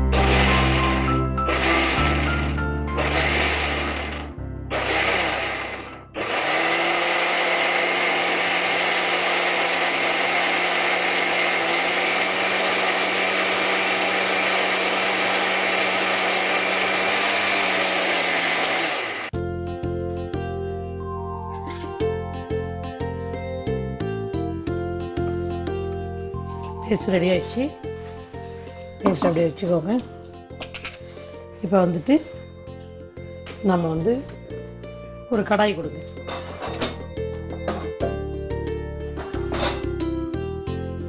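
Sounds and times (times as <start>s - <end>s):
mixer grinder grinding: 0.0s - 19.4s.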